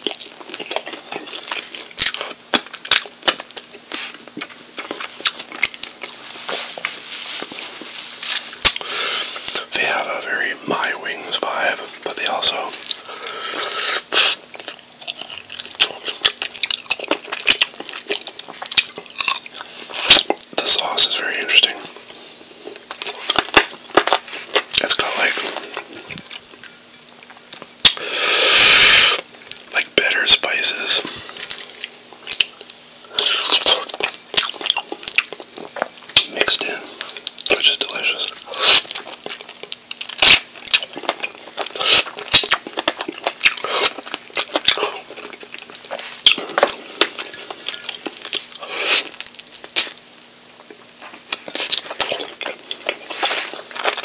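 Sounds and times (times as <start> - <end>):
wet chewing and mouth smacks: 0.0 - 9.7, 12.1 - 20.6, 22.6 - 28.0, 31.2 - 54.0
faint steady hum: 0.0 - 54.0.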